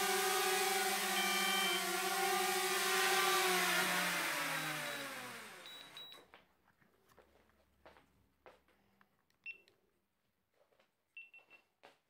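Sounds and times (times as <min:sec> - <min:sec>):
short high beep: 0:01.2 - 0:01.8.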